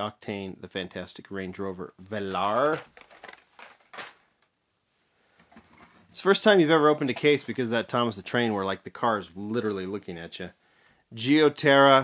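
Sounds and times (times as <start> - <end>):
plastic and cardboard clicks and rustles: 2.2 - 4.5, 5.4 - 6.1, 6.8 - 7.6.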